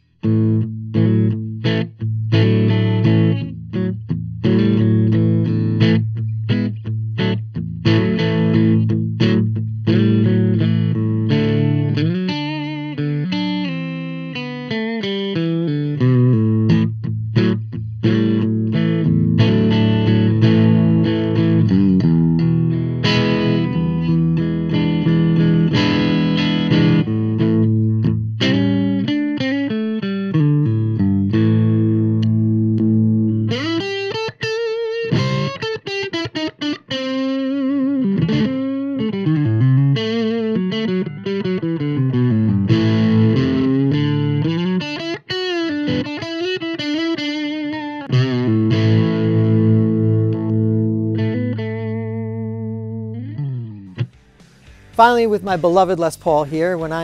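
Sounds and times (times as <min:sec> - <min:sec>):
electric guitar playing: 0:00.0 - 0:57.0.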